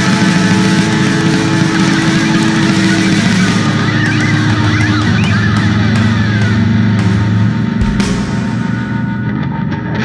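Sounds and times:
bass and drums: 0.0s - 10.0s
distorted electric guitars droning: 0.0s - 10.0s.

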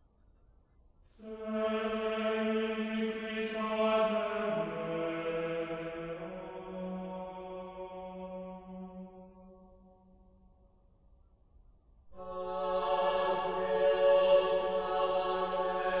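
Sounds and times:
choir singing held chords: 1.2s - 9.6s, 12.1s - 16.0s.

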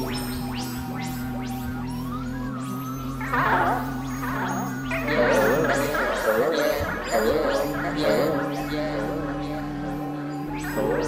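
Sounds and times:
low electronic drones: 0.0s - 11.0s
warbling wavering tones: 0.0s - 11.0s.

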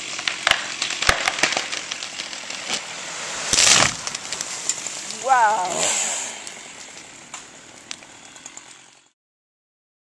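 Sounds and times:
sharp cracks: 0.0s - 9.0s.

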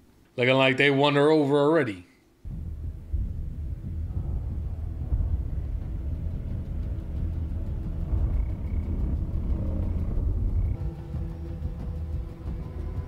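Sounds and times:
deep rumble: 2.4s - 13.0s.

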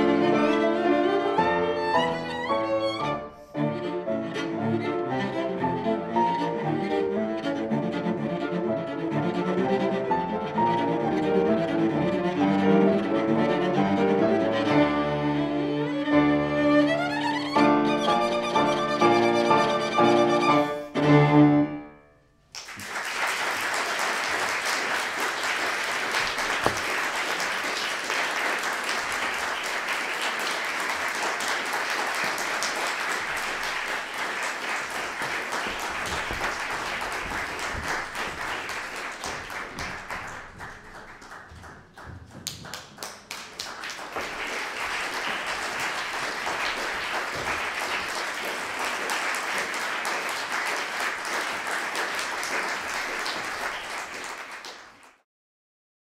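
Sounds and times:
audience applauding: 22.5s - 55.2s.

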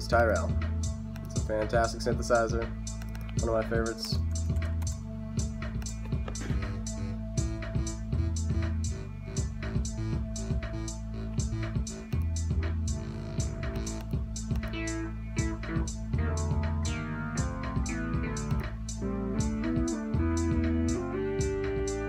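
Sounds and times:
drum machine beat: 0.0s - 22.0s
synth bass line: 0.0s - 22.0s.

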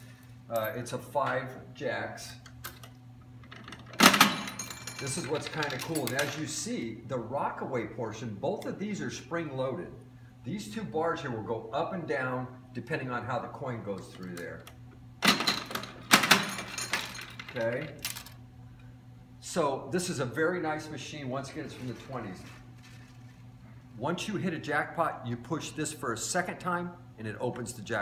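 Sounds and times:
coin mechanism metallic clatter: 3.5s - 6.5s, 15.2s - 18.4s.

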